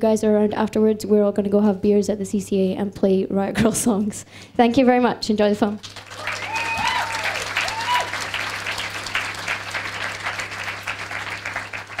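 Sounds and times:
audience applauding: 5.8 - 12.0
people cheering: 6.0 - 12.0.

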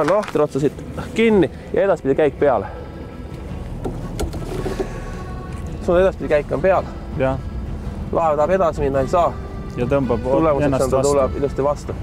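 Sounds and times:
boat engine low rumble: 0.3 - 12.0.

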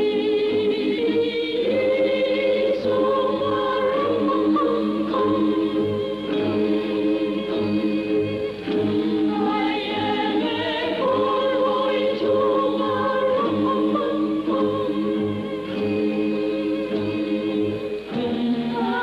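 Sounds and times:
choir singing sustained chords: 0.0 - 19.0.

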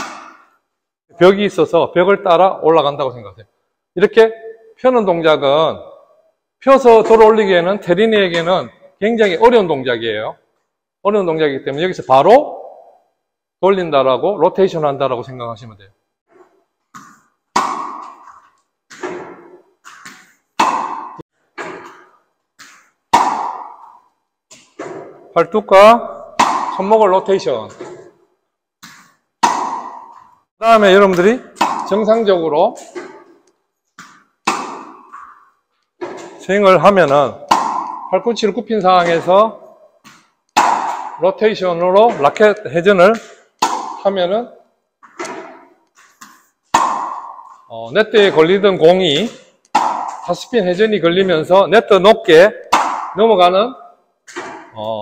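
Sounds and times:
tennis balls struck: 0.0 - 0.6, 16.3 - 54.8.

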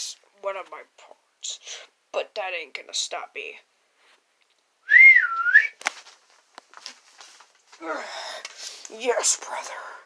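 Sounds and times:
person whistling wavering note: 4.9 - 5.8.

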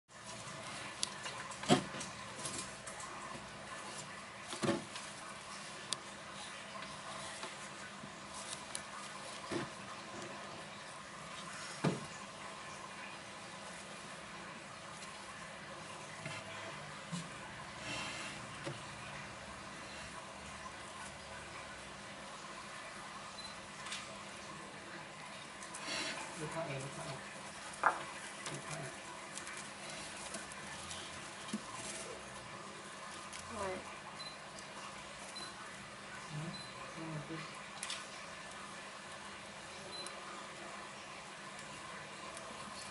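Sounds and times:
gerbils rustling and scratching in hay: 0.1 - 20.1, 25.3 - 42.9
small crackles and clicks: 37.8 - 38.6.

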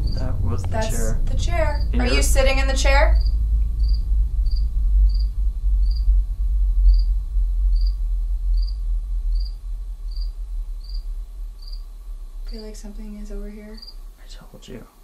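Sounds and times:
cricket chirping: 0.0 - 15.0
low rumble: 0.0 - 15.0.

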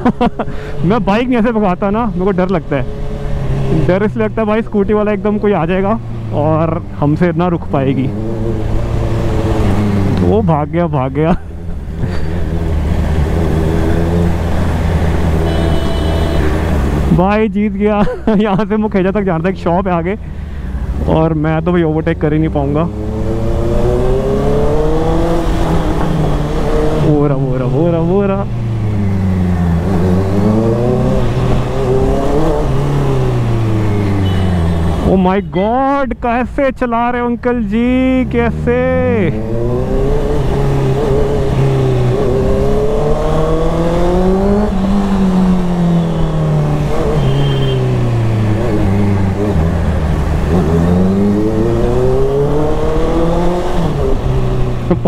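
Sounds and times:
motorcycle engine accelerating: 0.0 - 10.6, 11.3 - 17.2, 22.1 - 35.3, 38.0 - 55.0
road noise: 0.0 - 55.0
man's voice: 3.7 - 8.2, 17.1 - 20.2, 21.0 - 23.0, 27.0 - 28.5, 35.0 - 39.5.

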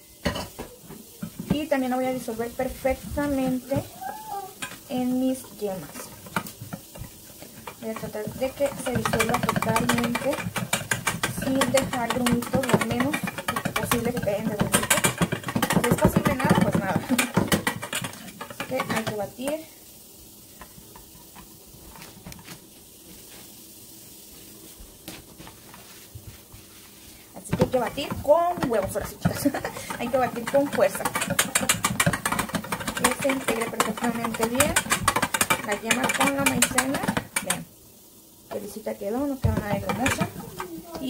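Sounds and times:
steady low hiss: 0.0 - 41.0
whisk beating in metal bowl: 1.2 - 4.0, 4.6 - 19.6, 27.4 - 37.7, 38.5 - 41.0.

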